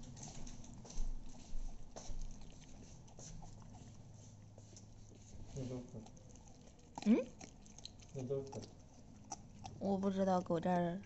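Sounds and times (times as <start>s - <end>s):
puppy chewing on bone: 0.0s - 11.0s.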